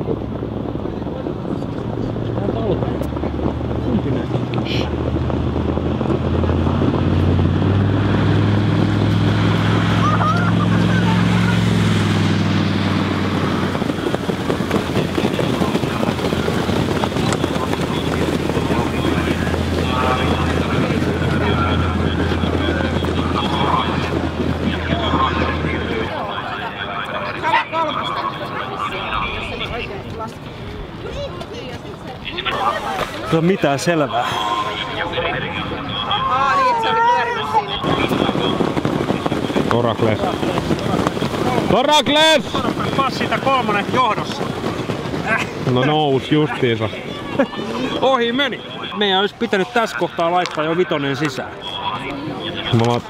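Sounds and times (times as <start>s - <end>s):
wind on microphone: 0.0s - 50.1s
trotters and sulkies passing: 0.0s - 53.0s.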